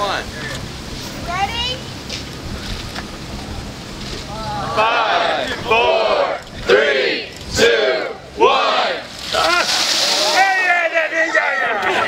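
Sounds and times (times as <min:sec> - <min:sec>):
people yelling and whooping: 0:04.2 - 0:06.5, 0:09.3 - 0:12.0
ice water splashing: 0:09.1 - 0:11.1.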